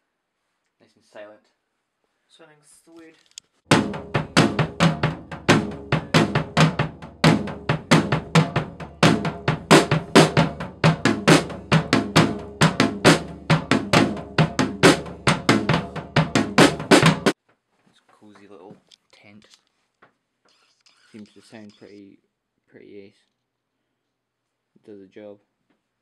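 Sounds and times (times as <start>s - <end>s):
drum kit rock beat: 3.7s - 17.4s.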